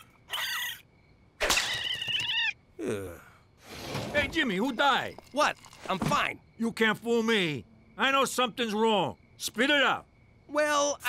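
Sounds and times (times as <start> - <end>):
cartoon raccoon calls: 0.0 - 0.9, 1.5 - 2.6
man sighing: 2.8 - 3.4.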